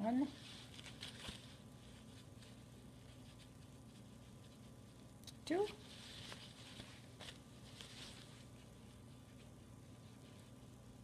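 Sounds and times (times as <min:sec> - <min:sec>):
fabric rustling: 0:00.0 - 0:11.0.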